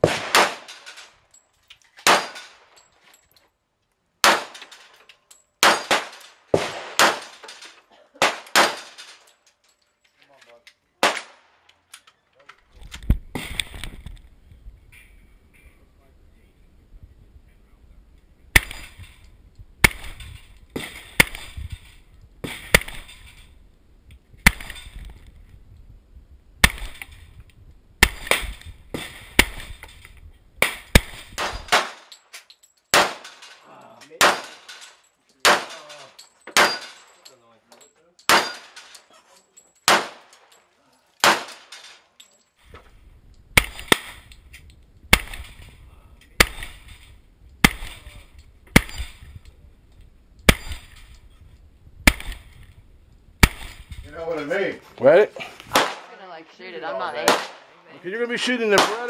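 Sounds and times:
pistol shots with echo: 0.0 - 0.9, 2.1 - 2.6, 4.2 - 4.6, 5.6 - 7.4, 8.2 - 9.0, 11.0 - 11.5, 32.9 - 33.4, 34.2 - 34.7, 35.4 - 36.0, 38.3 - 38.8, 39.9 - 40.3, 41.2 - 41.7, 47.6 - 48.1, 55.7 - 56.1, 57.2 - 57.7, 58.7 - 59.0.

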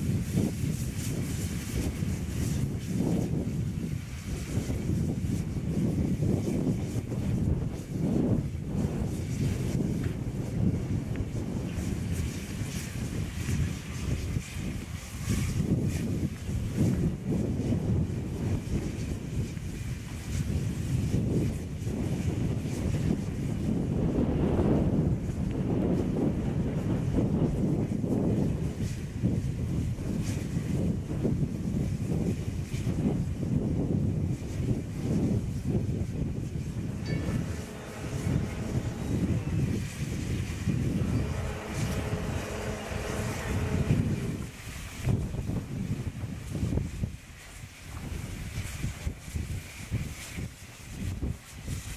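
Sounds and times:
steam locomotive hissing steam: 0.0 - 33.0, 34.3 - 51.9
wind buffeting microphone: 0.0 - 51.9
faint steady tone: 36.9 - 40.2, 40.9 - 44.4.

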